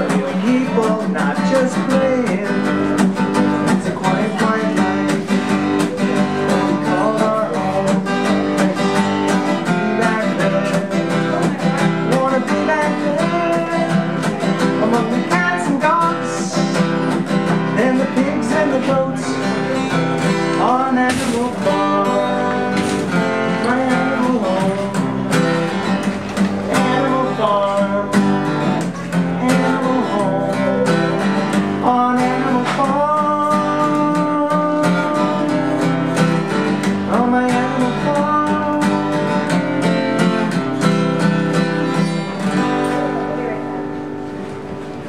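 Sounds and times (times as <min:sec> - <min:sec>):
person singing: 0:00.0 - 0:25.4, 0:26.5 - 0:40.5
acoustic guitar strummed: 0:00.0 - 0:45.0.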